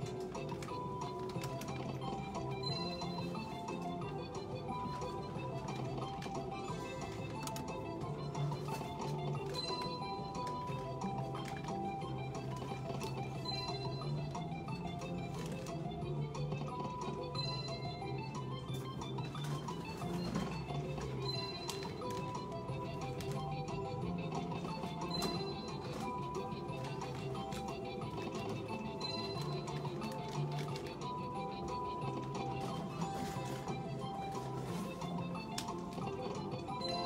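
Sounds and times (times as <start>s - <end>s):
looping electronic game music: 0.0s - 37.0s.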